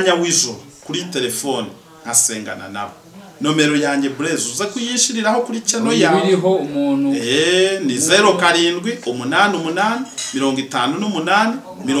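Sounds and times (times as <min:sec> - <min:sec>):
man speaking into a microphone: 0:02.2 - 0:06.5, 0:07.1 - 0:12.0.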